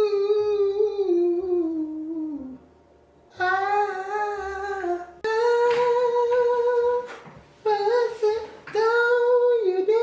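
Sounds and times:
person singing long held notes: 0.0 - 2.6, 3.3 - 7.1.

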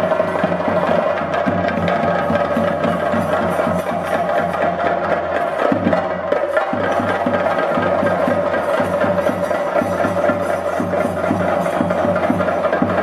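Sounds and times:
drum ensemble fast rhythm: 0.0 - 13.0.

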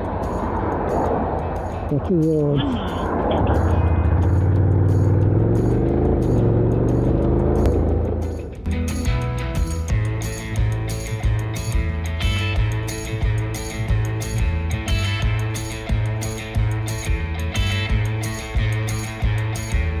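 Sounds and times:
background music with steady beat: 0.0 - 20.0
motorcycle engine running: 3.4 - 8.7.

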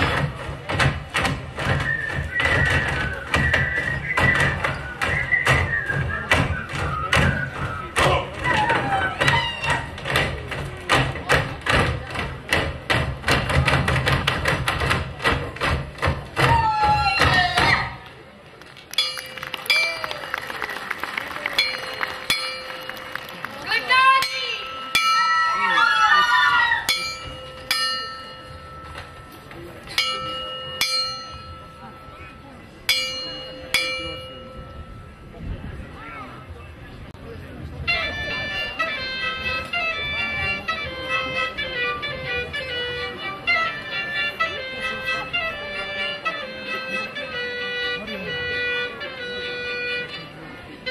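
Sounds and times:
cimbalom band folk music: 0.0 - 50.9
ringing cimbalom strikes: 24.2 - 35.7.

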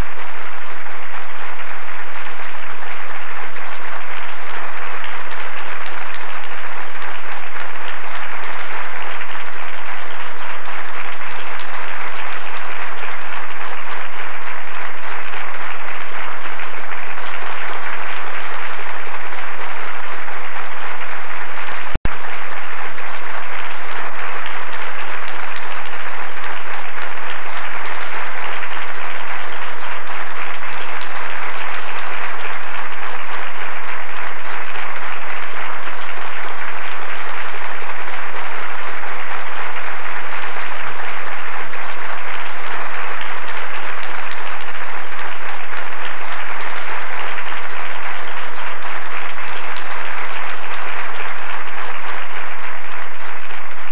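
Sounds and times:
audience applauding: 0.0 - 53.9.

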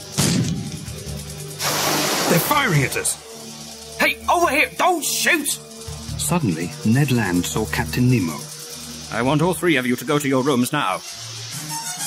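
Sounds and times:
background music: 0.0 - 12.0
cannon shot blast: 0.2 - 0.8
rushing noise: 1.6 - 4.2.

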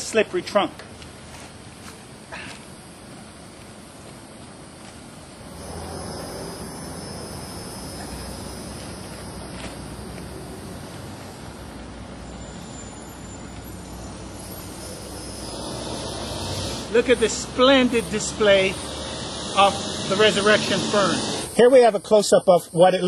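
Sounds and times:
low rumbling background noise: 0.0 - 23.0
faint scuffs: 0.9 - 5.1, 8.8 - 11.1.

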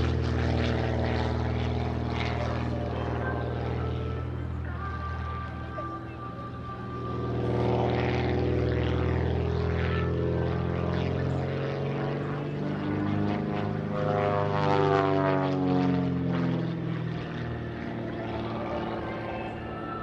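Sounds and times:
propeller plane engine droning: 0.0 - 20.0.

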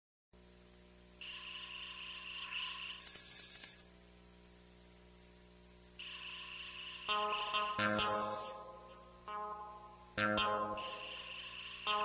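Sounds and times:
faint steady hum: 0.4 - 12.0
rising electronic hiss: 6.0 - 8.8.

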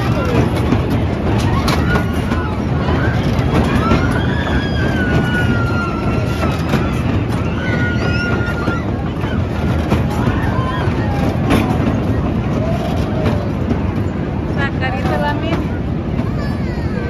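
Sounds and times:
fairground ride mechanical rumble: 0.0 - 17.0
voices: 0.0 - 17.0.

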